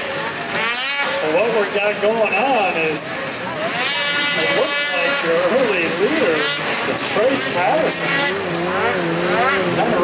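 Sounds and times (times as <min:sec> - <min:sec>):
snowmobiles revving: 0:00.0 - 0:10.0
announcer's voice: 0:01.2 - 0:03.1.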